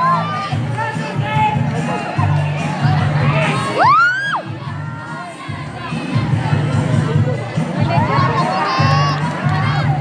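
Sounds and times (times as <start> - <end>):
large crowd cheering: 0.0 - 5.6, 7.9 - 10.0.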